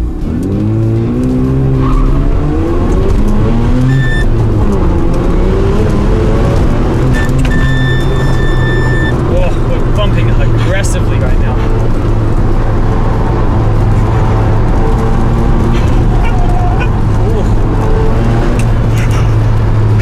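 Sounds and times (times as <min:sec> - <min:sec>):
car engine revving under load: 0:00.0 - 0:20.0
tyres squealing: 0:07.0 - 0:10.9, 0:16.0 - 0:18.3.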